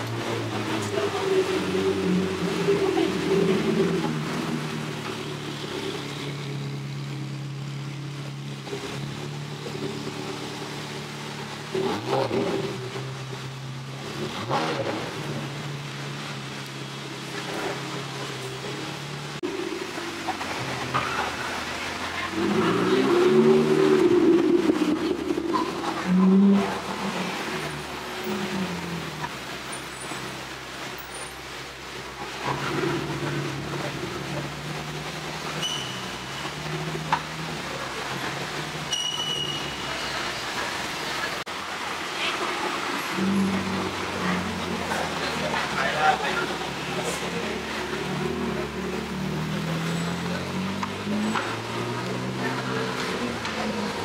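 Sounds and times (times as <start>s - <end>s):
cars rolling past slowly: 0.0s - 54.0s
engine revving loudly: 22.3s - 29.2s.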